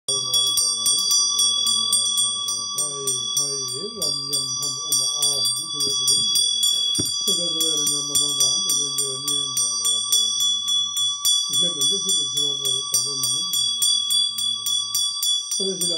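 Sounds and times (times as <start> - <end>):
low voice chanting prayers: 0.1 - 15.9
small hand bell ringing rapidly: 0.1 - 15.9.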